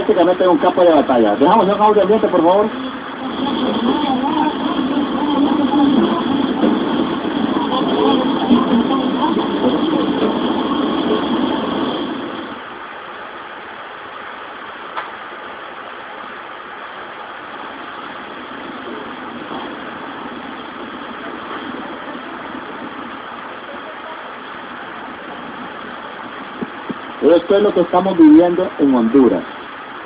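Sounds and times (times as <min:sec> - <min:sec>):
street protest din: 0:00.0 - 0:12.6.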